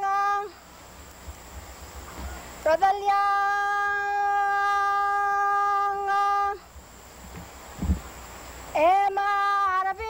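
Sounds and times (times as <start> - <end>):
low thump: 7.3 - 8.1.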